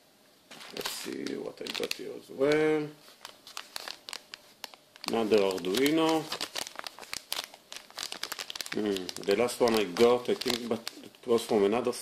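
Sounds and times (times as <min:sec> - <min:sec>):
plastic bags crinkling: 0:00.5 - 0:11.7.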